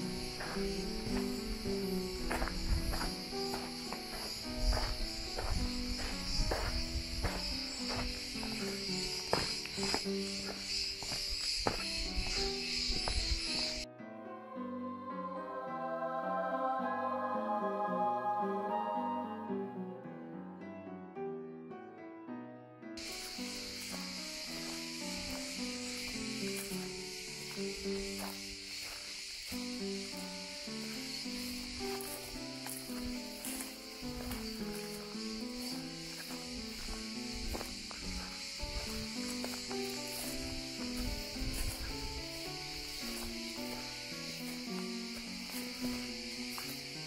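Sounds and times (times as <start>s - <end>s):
high-pitched cicada chorus: 0.0s - 13.9s, 23.0s - 47.0s
calm background music: 0.0s - 47.0s.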